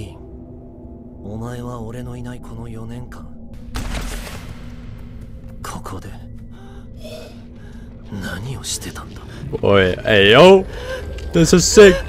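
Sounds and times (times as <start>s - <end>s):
low steady drone: 0.0s - 12.0s.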